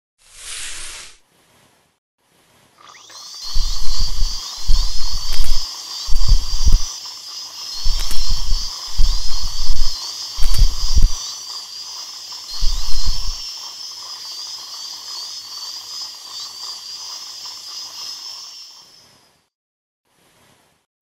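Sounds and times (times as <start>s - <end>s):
water spray: 0.2s - 1.2s, 2.9s - 18.9s
dental drill whining: 2.8s - 18.6s.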